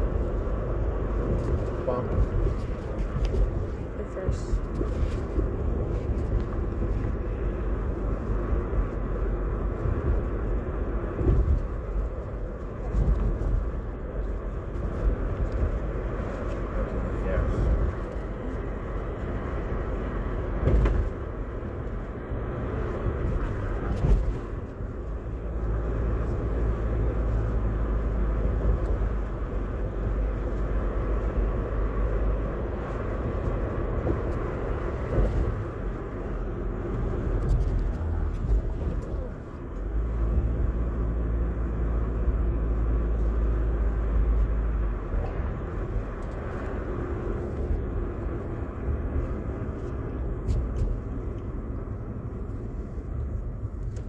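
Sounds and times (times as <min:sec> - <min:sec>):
car road and engine rumble: 0:00.0 - 0:54.0
car bumps: 0:11.1 - 0:12.0, 0:20.5 - 0:21.4.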